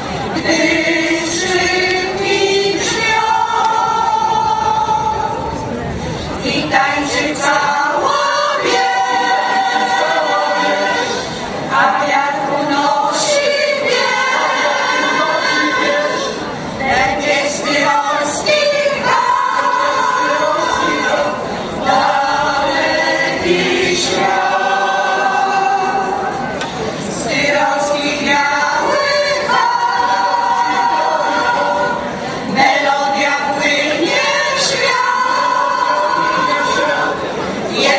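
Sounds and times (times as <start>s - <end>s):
mixed choir singing: 0.0s - 5.6s, 6.4s - 37.9s.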